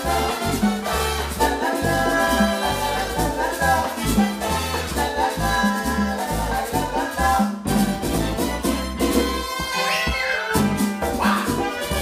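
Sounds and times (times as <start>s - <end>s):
bass line: 0.0s - 12.0s
conga percussion: 0.0s - 12.0s
salsa band playing: 0.0s - 12.0s
saxophone and horns: 0.0s - 12.0s.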